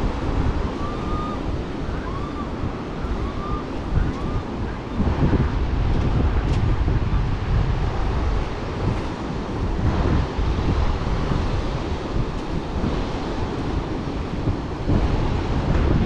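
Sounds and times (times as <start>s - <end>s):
ocean surf breaking: 0.0s - 16.0s
wind buffeting microphone: 0.0s - 16.0s.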